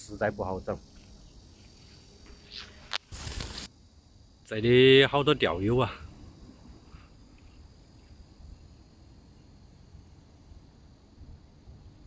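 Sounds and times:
high insect drone: 0:00.0 - 0:12.0.

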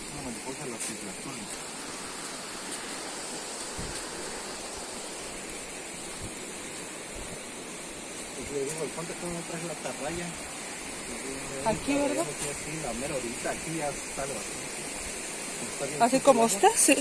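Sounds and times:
rushing hiss of background noise: 0:00.0 - 0:17.0.

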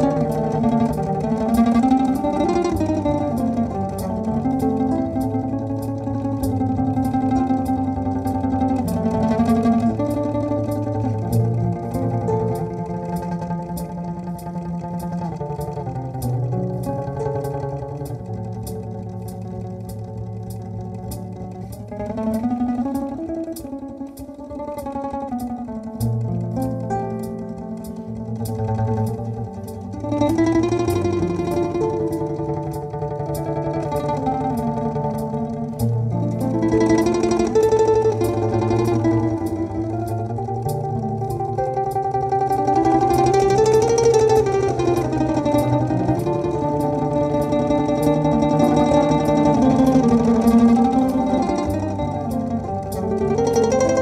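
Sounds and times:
light steady tick: 0:00.0 - 0:54.0
looped low bass notes: 0:00.0 - 0:54.0
plucked string melody: 0:00.0 - 0:54.0.

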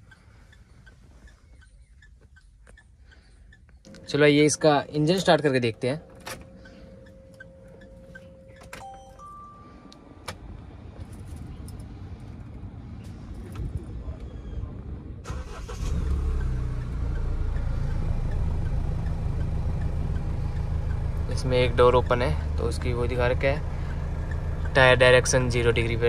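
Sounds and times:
car engine starting and idling: 0:00.0 - 0:14.5, 0:15.2 - 0:26.0
electronic dashboard chimes: 0:03.9 - 0:10.0.

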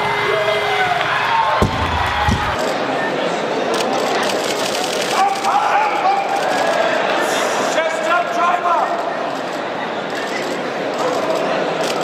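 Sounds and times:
large hall noise: 0:00.0 - 0:12.0
barbell thudding on platform: 0:01.6 - 0:02.6.

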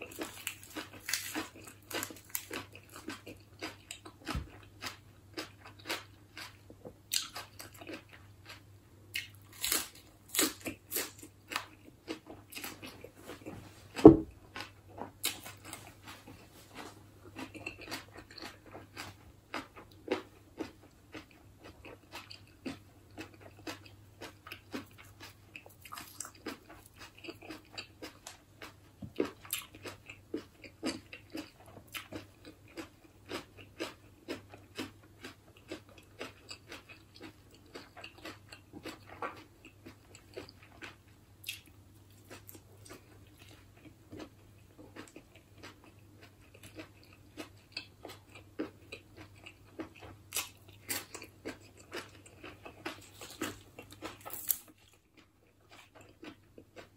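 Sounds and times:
person chewing crunchy lettuce: 0:00.0 - 0:56.9
sharp thump: 0:14.0 - 0:14.3.

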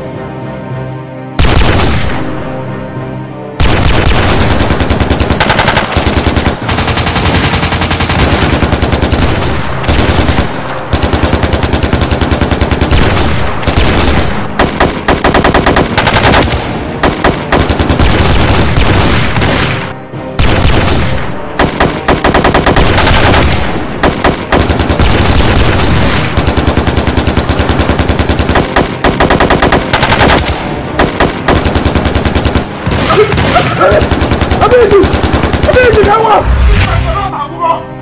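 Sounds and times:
rapid automatic gunfire: 0:01.4 - 0:01.9, 0:03.6 - 0:19.8, 0:20.4 - 0:36.4.

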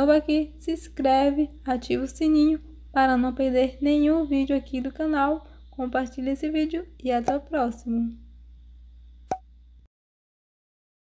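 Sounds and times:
faint low hum: 0:00.0 - 0:09.9.

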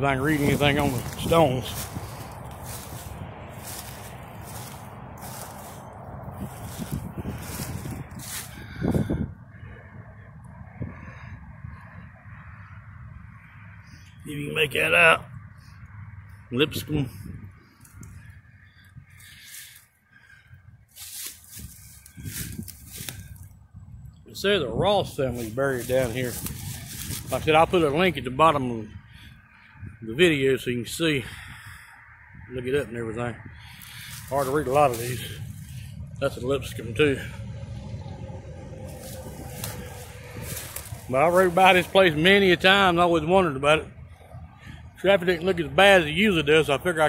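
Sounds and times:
low rumble of traffic: 0:00.0 - 0:47.0.

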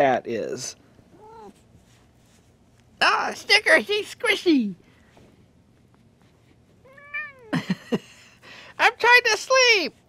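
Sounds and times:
cat meowing: 0:01.1 - 0:01.6, 0:06.8 - 0:07.6.

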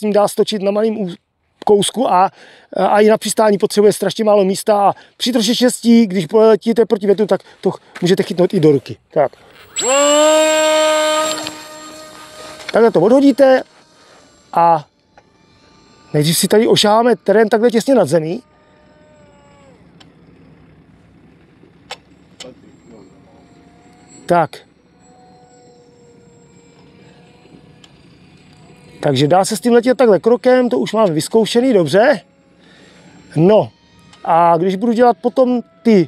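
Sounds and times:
electric motor and propeller whine: 0:09.4 - 0:36.0.

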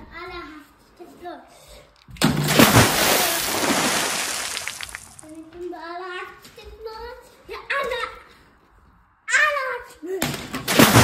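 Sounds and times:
water splashing in plastic tub: 0:02.2 - 0:05.2, 0:10.7 - 0:11.0.

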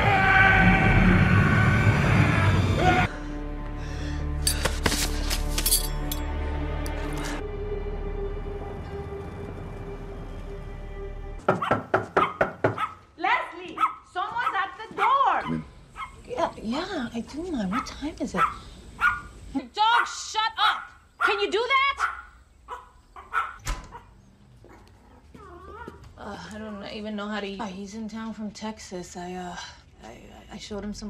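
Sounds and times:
dog barking: 0:11.5 - 0:13.0, 0:13.8 - 0:16.2, 0:17.7 - 0:19.3, 0:19.9 - 0:24.1
voices: 0:13.2 - 0:18.7.

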